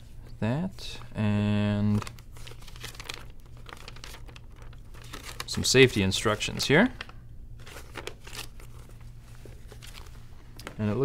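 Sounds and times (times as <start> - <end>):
paper leaflets rustling: 1.8 - 10.8.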